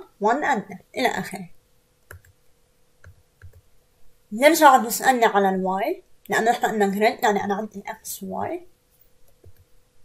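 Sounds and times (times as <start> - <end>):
computer keyboard keys clicking: 2.1 - 2.4, 3.0 - 3.6.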